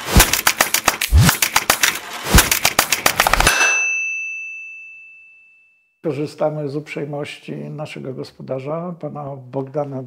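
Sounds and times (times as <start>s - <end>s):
bell-like ding: 3.5s - 6.0s.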